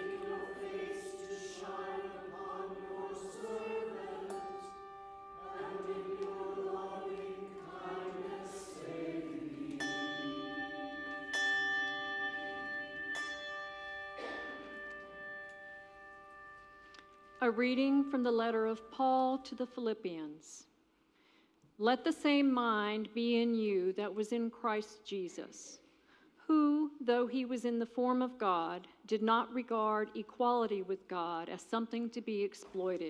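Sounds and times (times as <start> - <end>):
organ accompaniment: 0.0 - 11.3
choir chanting: 0.0 - 16.1.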